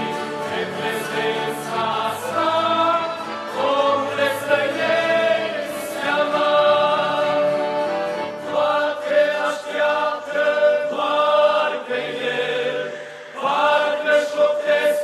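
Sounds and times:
accordions: 0:00.0 - 0:15.0
guitar: 0:00.0 - 0:15.0
men's vocal group singing: 0:00.0 - 0:15.0.

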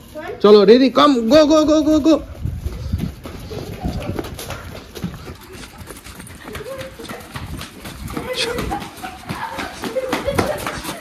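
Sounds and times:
dog paws on concrete: 0:00.0 - 0:11.0
footsteps on concrete: 0:00.0 - 0:11.0.

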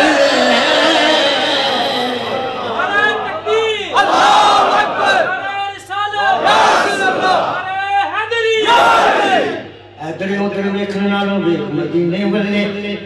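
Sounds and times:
man reciting verse through loudspeaker: 0:05.0 - 0:06.4, 0:07.4 - 0:08.7, 0:09.6 - 0:13.0.

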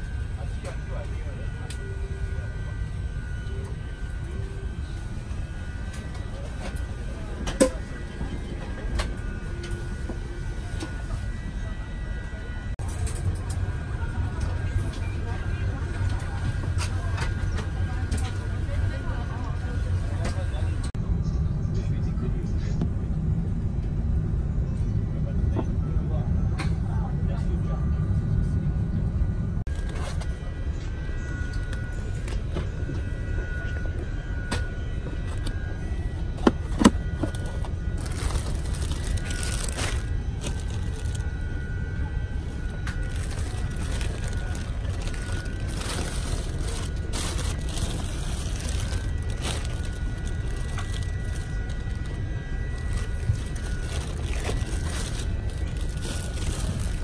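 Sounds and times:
air conditioning rumble: 0:00.0 - 0:57.0.

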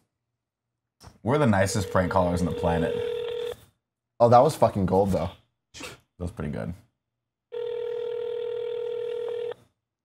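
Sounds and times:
phone ringback tone: 0:01.7 - 0:03.6, 0:07.5 - 0:09.6.

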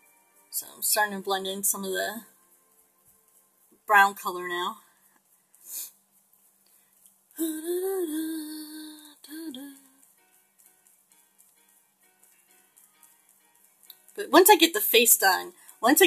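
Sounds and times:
woman humming: 0:07.4 - 0:10.0.

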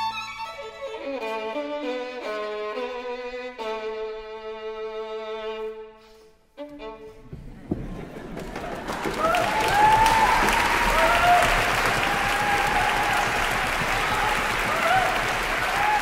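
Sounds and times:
solo violin melody: 0:00.0 - 0:07.6.

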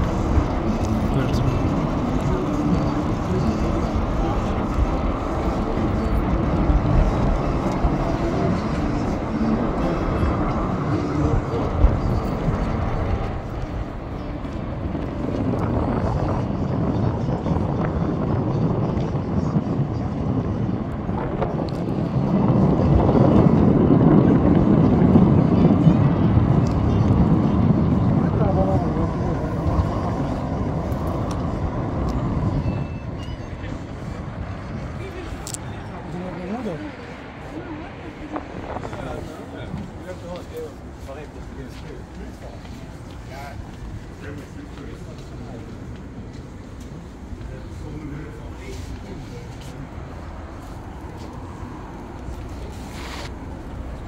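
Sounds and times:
people talking: 0:00.0 - 0:13.6, 0:21.4 - 0:31.3, 0:32.2 - 0:51.4
road traffic rumble: 0:00.0 - 0:54.0.

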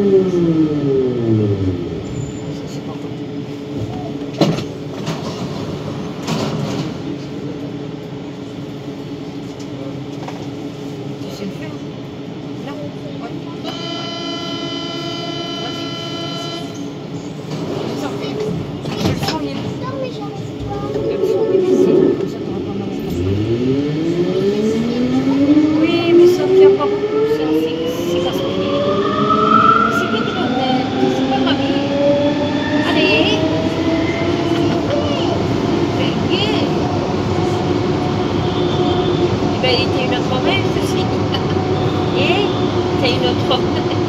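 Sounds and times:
train hum: 0:00.0 - 0:44.0.

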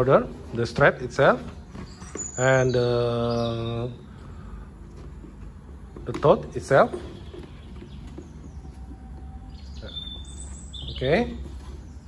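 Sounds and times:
steady low hum: 0:00.0 - 0:12.0
faint high bird chirps: 0:01.7 - 0:04.1, 0:06.9 - 0:12.0.

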